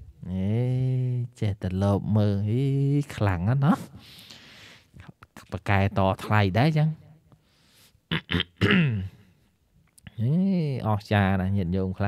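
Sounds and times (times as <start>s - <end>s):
man clearing throat: 8.1s - 9.2s.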